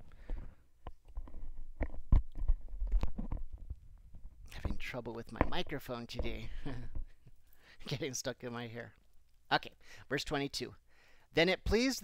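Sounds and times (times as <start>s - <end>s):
microphone handling noise: 0.0s - 7.2s.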